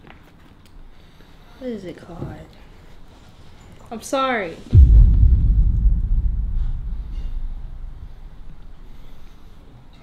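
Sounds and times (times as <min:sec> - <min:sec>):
deep boom with low rumble: 0:04.7 - 0:08.6.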